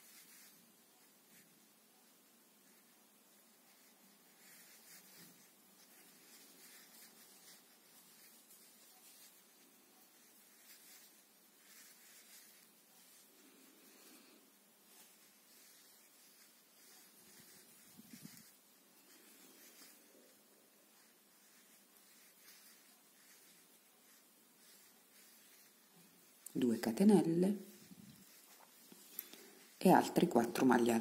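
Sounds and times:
yarn and crochet hook rustling: 0:00.0 - 0:31.0.

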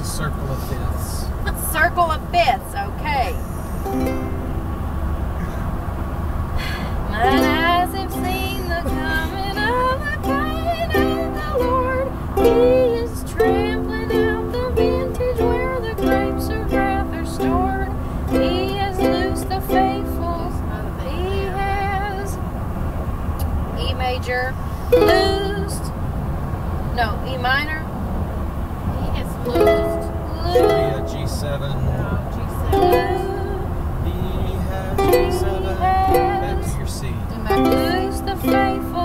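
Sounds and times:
car road rumble: 0:00.0 - 0:39.0
ukulele strumming: 0:03.6 - 0:05.5, 0:07.1 - 0:22.4, 0:24.8 - 0:25.9, 0:29.4 - 0:31.6, 0:32.5 - 0:34.0, 0:34.9 - 0:39.0
person singing: 0:06.7 - 0:22.4, 0:24.8 - 0:25.9, 0:29.4 - 0:31.6, 0:32.5 - 0:39.0.

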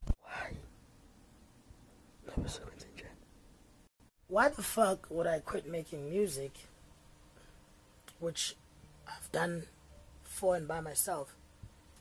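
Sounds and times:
man's breathy whisper: 0:00.2 - 0:00.7, 0:02.2 - 0:03.2.

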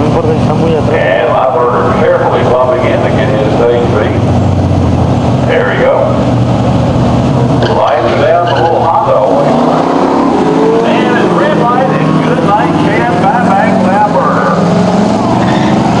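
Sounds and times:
racing cars accelerating: 0:07.2 - 0:16.0.

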